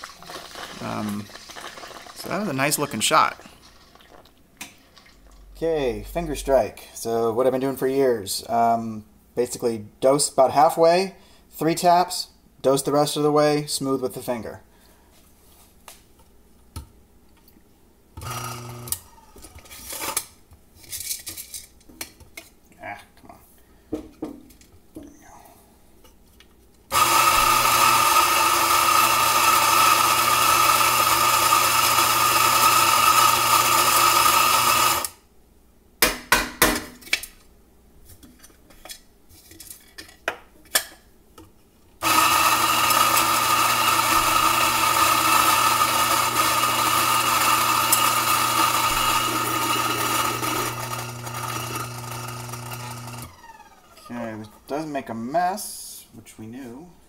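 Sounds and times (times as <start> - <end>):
electric coffee grinder running: 18.2 - 19.6, 26.9 - 35.2, 42.0 - 54.1.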